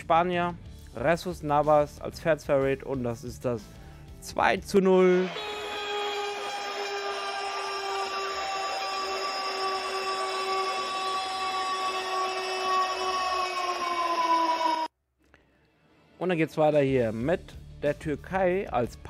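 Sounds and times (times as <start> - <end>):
long goal horn blast: 5.2 - 14.9.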